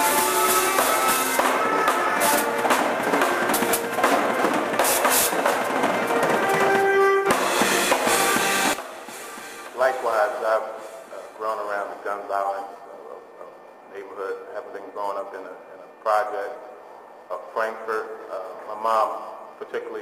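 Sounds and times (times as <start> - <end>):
guitar: 0.0 - 10.8
held keyboard notes: 0.0 - 11.0
drum kit with cymbal hits: 0.0 - 11.4.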